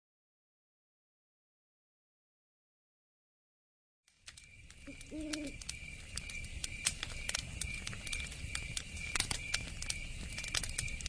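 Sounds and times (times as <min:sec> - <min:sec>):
campfire crackling and popping: 0:04.1 - 0:11.0.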